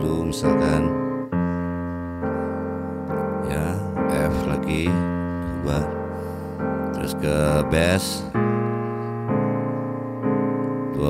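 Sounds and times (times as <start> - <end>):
piano blues chords: 0.0 - 11.0.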